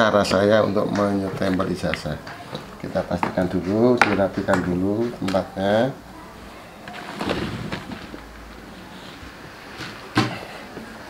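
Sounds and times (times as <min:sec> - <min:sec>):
objects rustling and clattering: 0:06.6 - 0:11.0.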